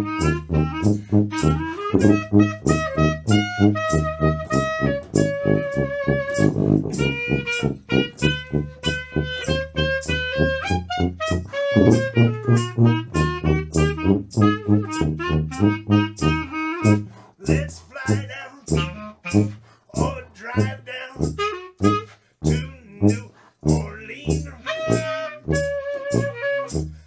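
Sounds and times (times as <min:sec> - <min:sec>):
jazz band playing: 0:00.0 - 0:27.0.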